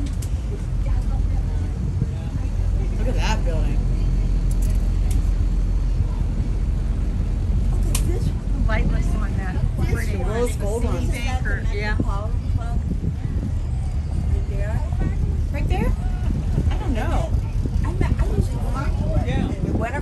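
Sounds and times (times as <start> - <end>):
boat engine rumble: 0.0 - 20.0
faint voices: 0.0 - 20.0
wind on microphone: 0.0 - 20.0.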